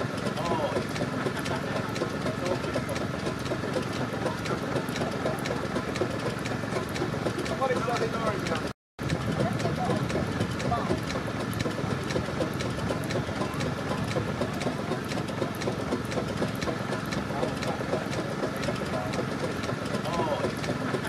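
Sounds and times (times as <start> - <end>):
low engine hum: 0.0 - 21.0
people chattering: 9.3 - 15.6.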